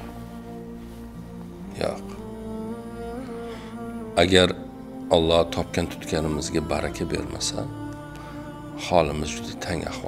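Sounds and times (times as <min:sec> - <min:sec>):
soft music of sustained notes: 0:00.0 - 0:10.0.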